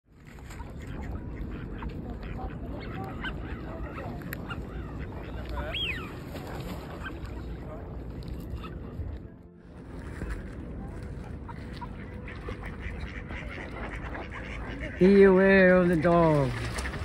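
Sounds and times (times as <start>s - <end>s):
ducks calling: 0.4s - 7.6s, 10.1s - 17.0s.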